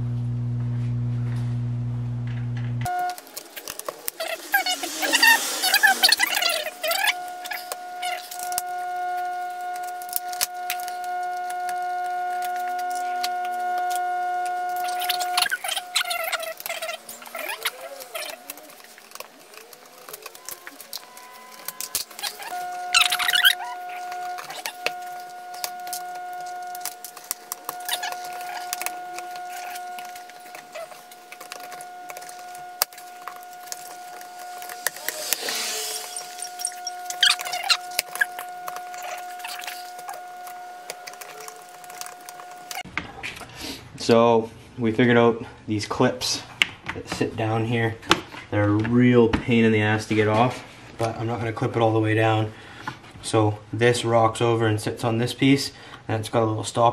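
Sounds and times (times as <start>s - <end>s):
steady pitched hum: 0.0s - 42.9s.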